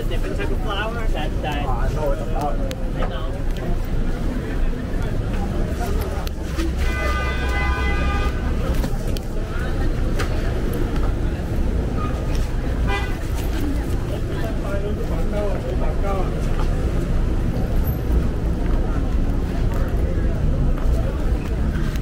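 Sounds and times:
street traffic rumble: 0:00.0 - 0:22.0
voices of passers-by: 0:00.0 - 0:22.0
car horn blast: 0:06.8 - 0:08.5, 0:12.9 - 0:13.2.

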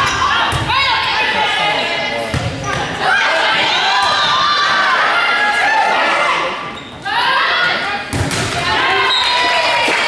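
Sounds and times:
players and spectators shouting: 0:00.0 - 0:10.0.

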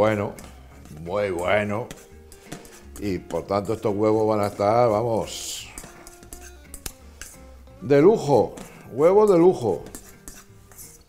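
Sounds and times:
metal fork clicking on bowl: 0:05.8 - 0:07.4.

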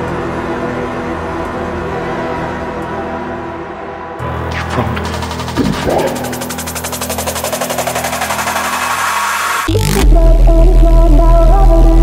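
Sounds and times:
sustained low notes: 0:00.0 - 0:12.0
drum and bass drum roll: 0:04.5 - 0:09.7.

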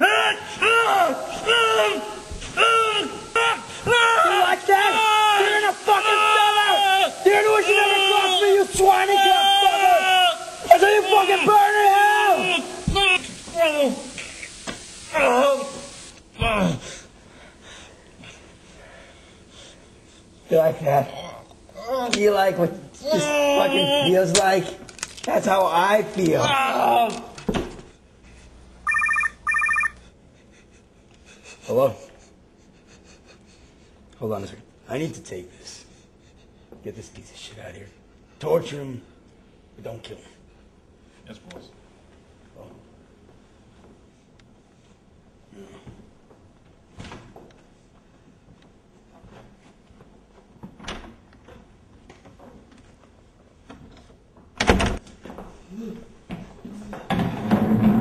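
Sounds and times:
phone ringing electronic trill: 0:28.8 - 0:30.0.

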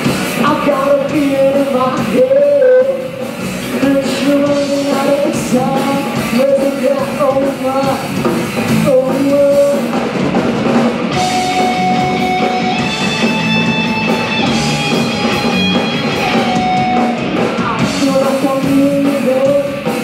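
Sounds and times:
live rock band playing: 0:00.0 - 0:20.0
long held guitar notes: 0:11.1 - 0:18.0.

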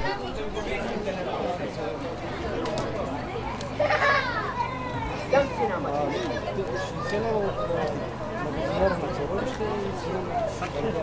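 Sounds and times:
chatter of voices: 0:00.0 - 0:11.0
children's voices: 0:03.3 - 0:09.0.

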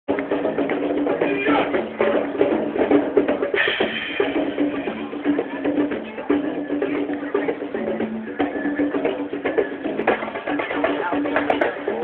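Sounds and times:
crowd voices: 0:00.1 - 0:12.0
hand drums fast rhythm: 0:00.1 - 0:12.0.

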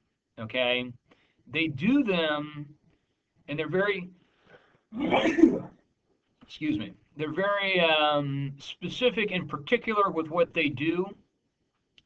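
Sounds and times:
man coughing: 0:05.0 - 0:05.7.

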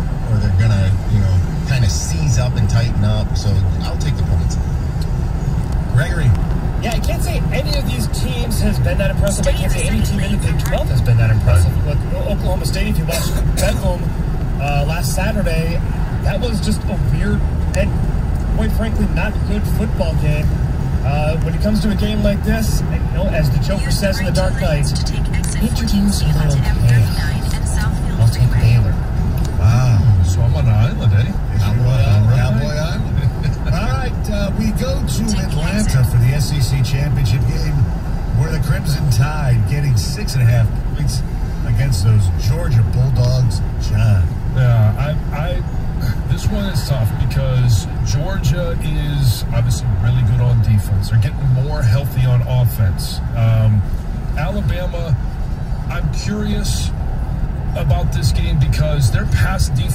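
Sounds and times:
car road and engine rumble: 0:00.0 - 0:59.9
indistinct talking from car radio: 0:00.0 - 0:59.9.

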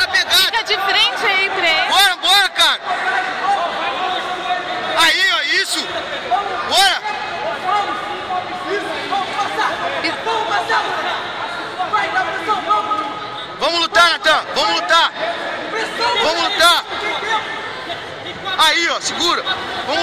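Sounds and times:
crowd chatter: 0:00.0 - 0:20.0
people shouting calls: 0:00.0 - 0:20.0.

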